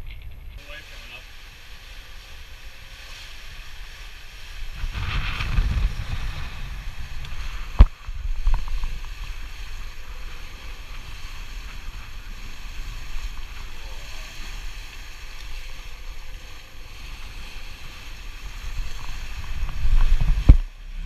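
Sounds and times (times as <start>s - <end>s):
water rushing along hull: 0.0s - 21.0s
wind buffeting microphone: 0.0s - 21.0s.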